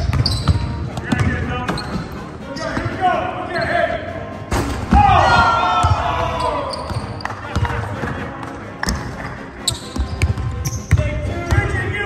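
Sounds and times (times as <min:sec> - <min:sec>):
basketball bouncing on hardwood floor: 0:00.0 - 0:01.3
people shouting: 0:04.9 - 0:06.8.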